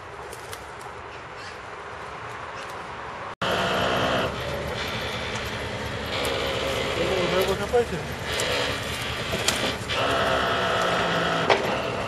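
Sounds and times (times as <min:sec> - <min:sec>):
hydraulic crane whine: 0:03.4 - 0:12.0
truck engine running: 0:03.4 - 0:12.0.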